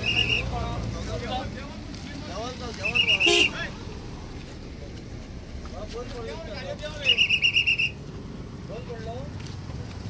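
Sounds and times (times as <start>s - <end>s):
whistle trill: 0.0s - 0.6s, 2.8s - 3.5s, 7.0s - 8.0s.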